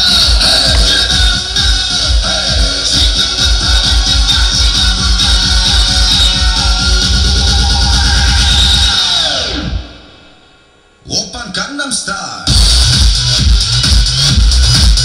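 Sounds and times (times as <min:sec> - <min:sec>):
electronic dance music: 0:00.0 - 0:10.5, 0:12.4 - 0:15.0.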